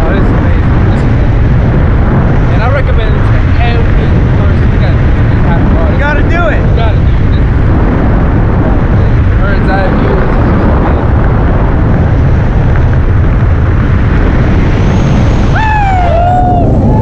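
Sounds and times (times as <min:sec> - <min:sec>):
wind rushing over microphone: 0:00.0 - 0:17.0.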